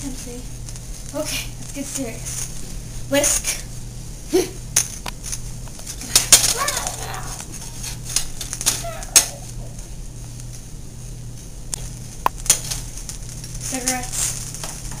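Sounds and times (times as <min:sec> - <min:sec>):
utensil scraping in a pan: 0:06.9 - 0:08.6.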